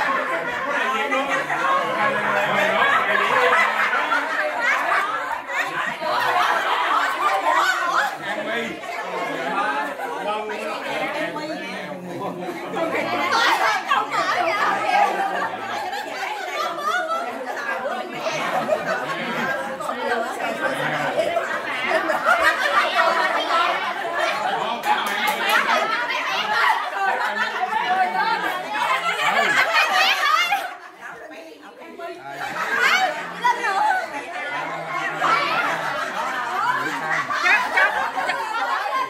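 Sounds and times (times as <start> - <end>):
group chatter: 0.0 - 39.0.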